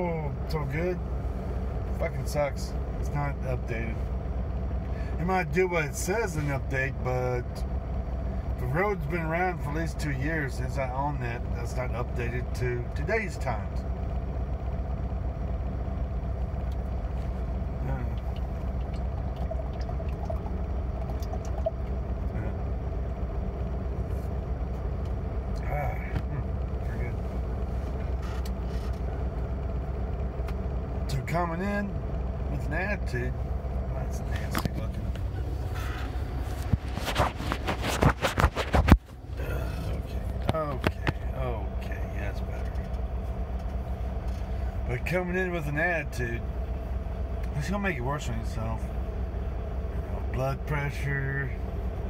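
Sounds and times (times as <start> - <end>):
truck engine idling hum: 0.0 - 52.0.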